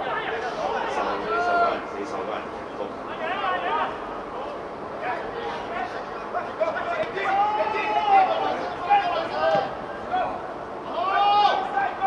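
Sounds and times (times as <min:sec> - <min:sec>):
men shouting: 0:00.0 - 0:01.9, 0:03.1 - 0:04.1, 0:05.0 - 0:12.0.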